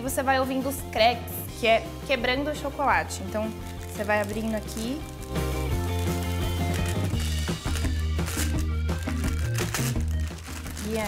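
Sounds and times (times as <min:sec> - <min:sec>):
background music: 0:00.0 - 0:11.0
parchment paper crinkling: 0:03.4 - 0:11.0
chocolate sheet cracking: 0:03.5 - 0:11.0.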